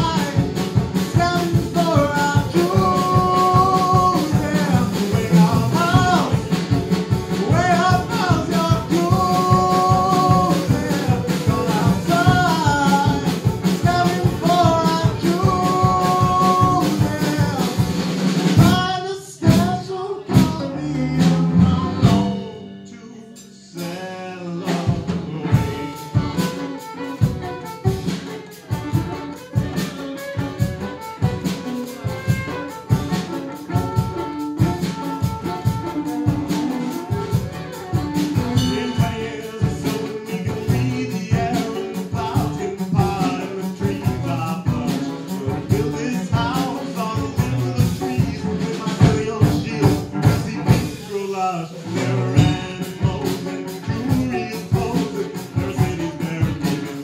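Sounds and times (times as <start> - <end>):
acoustic band playing: 0.0 - 57.0.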